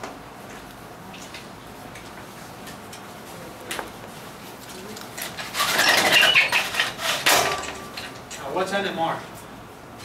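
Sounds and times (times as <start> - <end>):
scraping whiteboard with squeaks: 5.5 - 7.2.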